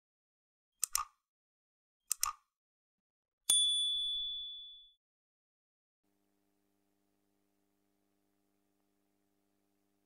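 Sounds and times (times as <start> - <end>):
quick clicks: 0.8 - 1.2, 2.1 - 2.5
bright bell ding: 3.5 - 5.0.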